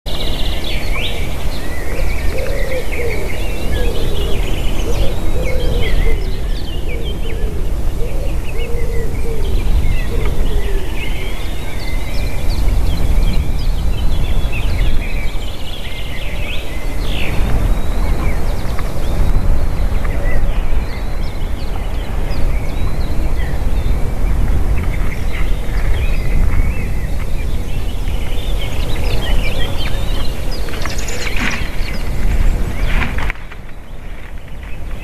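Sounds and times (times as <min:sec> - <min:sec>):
lower wavy bird calls: 0:00.1 - 0:35.0
songbirds chirping and trilling: 0:00.1 - 0:35.0
wind rumble on microphone: 0:00.1 - 0:35.0.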